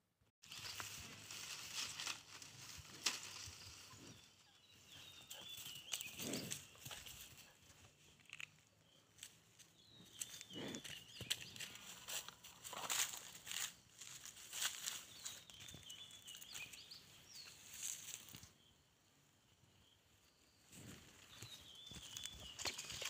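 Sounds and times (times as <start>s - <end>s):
footsteps on dry straw: 0.4s - 4.2s, 10.0s - 16.8s.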